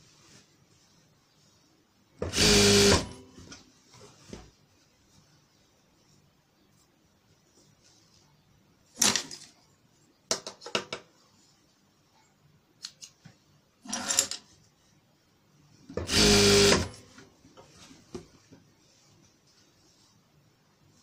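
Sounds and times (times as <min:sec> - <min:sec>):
sewing machine stitching: 0:02.2 - 0:03.2, 0:16.0 - 0:17.0.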